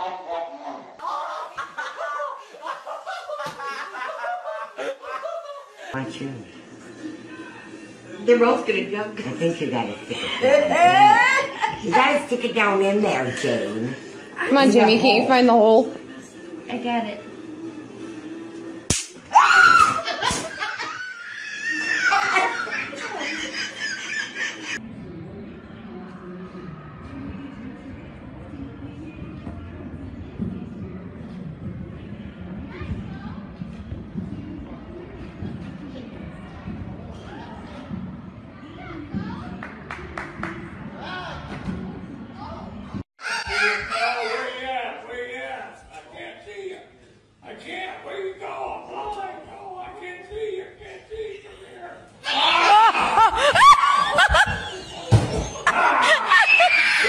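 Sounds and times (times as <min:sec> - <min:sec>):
voices echoing in gym: 0:00.0 - 0:18.5, 0:24.7 - 0:56.8
electric swatter snap: 0:18.9 - 0:19.3
woman screaming: 0:19.3 - 0:20.0.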